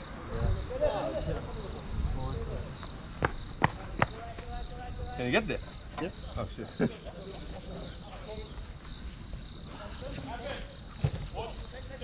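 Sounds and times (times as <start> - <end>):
crickets chirping: 0.0 - 12.0
distant shouts and chatter: 0.0 - 12.0.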